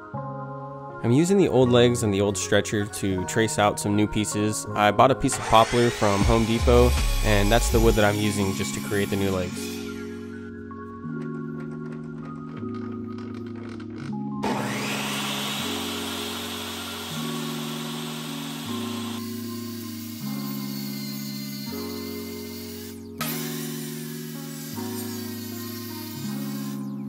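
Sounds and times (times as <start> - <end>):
background music: 0.0 - 27.0
table saw motor whining: 5.3 - 10.5, 14.4 - 27.0
saw ripping a board: 5.4 - 10.2, 14.4 - 27.0.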